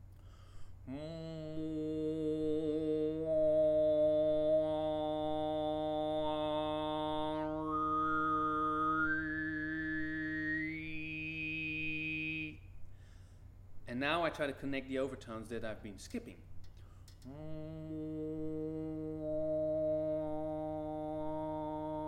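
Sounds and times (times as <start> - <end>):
man overtone singing: 0.9 - 12.6, 17.2 - 22.0.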